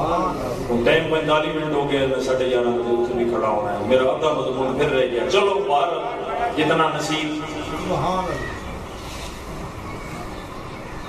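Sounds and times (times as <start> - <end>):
man speaking into a microphone: 0.0 - 8.6
steady background noise: 0.0 - 11.0.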